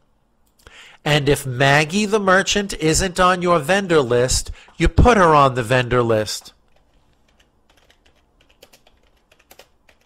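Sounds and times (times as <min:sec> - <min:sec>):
computer keyboard typing: 0:06.7 - 0:10.0.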